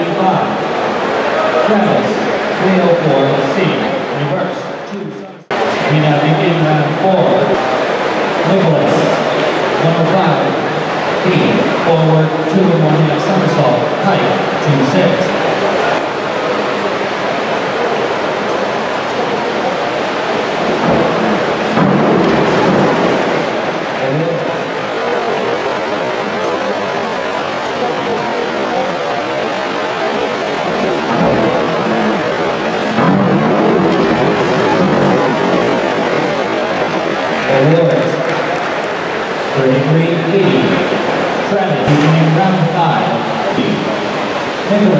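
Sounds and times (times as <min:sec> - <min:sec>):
crowd chattering: 0:00.0 - 0:44.9
water splashing echoing: 0:00.0 - 0:44.9.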